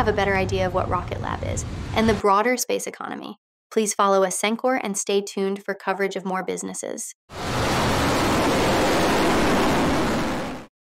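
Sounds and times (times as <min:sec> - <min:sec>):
rocket engine roar: 0:07.3 - 0:10.7.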